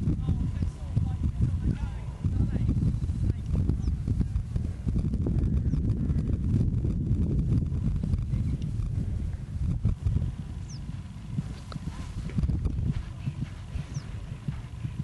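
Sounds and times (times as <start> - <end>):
horse hoofbeats on grass: 6.7 - 15.0.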